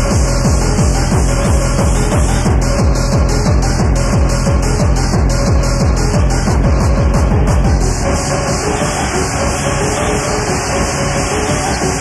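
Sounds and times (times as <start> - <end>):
noisy synth wash with steady tones: 0.0 - 12.0.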